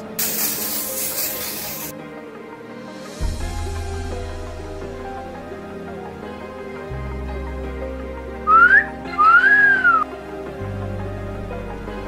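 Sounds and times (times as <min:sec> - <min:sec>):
background music: 0:00.0 - 0:12.0
person whistling: 0:08.5 - 0:10.1.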